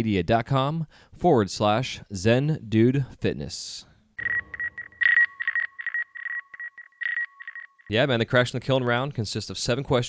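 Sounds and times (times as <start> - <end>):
electronic beeps: 4.2 - 7.9.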